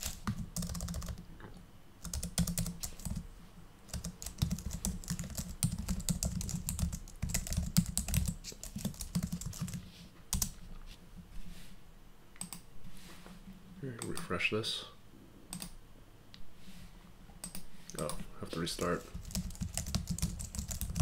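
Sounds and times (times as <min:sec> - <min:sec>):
typing on computer keyboard: 0:00.0 - 0:01.2, 0:02.0 - 0:03.2, 0:03.9 - 0:10.6, 0:12.4 - 0:12.6, 0:15.5 - 0:15.7, 0:17.4 - 0:18.2, 0:19.1 - 0:21.0.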